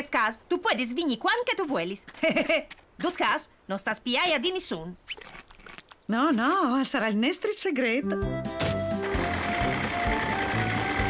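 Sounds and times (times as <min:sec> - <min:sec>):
background music: 0:08.0 - 0:11.0
truck engine rattling: 0:09.0 - 0:11.0.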